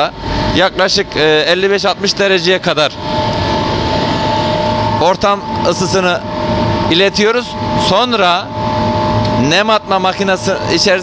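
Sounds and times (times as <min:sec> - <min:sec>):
blower fans humming: 0:00.0 - 0:11.0
held whining tones: 0:00.0 - 0:11.0.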